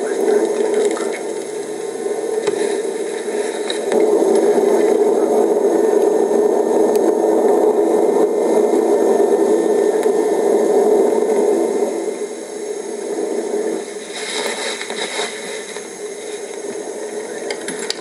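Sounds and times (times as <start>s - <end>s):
volcano eruption rough noise: 0.0s - 18.0s.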